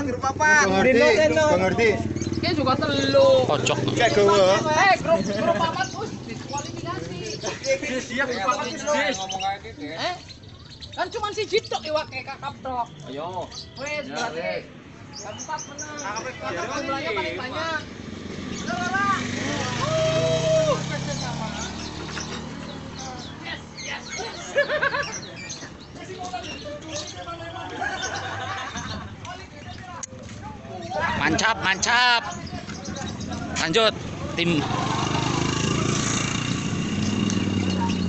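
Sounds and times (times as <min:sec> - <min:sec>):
motorcycle engine idling: 0:00.0 - 0:07.7
voices calling out: 0:00.0 - 0:38.0.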